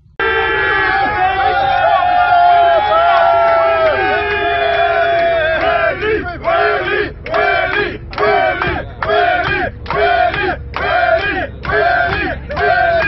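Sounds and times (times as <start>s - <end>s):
crowd cheering: 0.0s - 13.0s
crowd chanting in unison: 4.8s - 13.0s.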